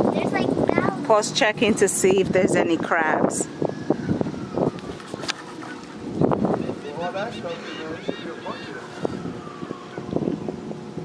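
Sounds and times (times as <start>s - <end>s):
distant unclear voices: 5.5s - 10.1s.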